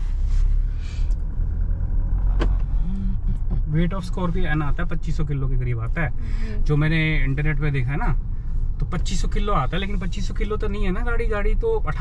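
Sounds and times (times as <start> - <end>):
engine and road noise rumble: 0.0 - 12.0.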